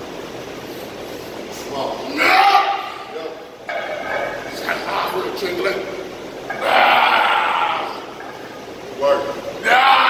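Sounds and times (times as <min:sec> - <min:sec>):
man yelling with effort: 0:02.1 - 0:03.2, 0:09.6 - 0:10.0.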